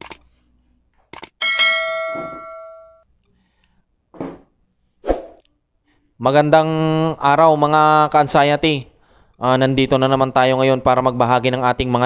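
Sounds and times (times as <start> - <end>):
bright bell ding: 1.4 - 3.0.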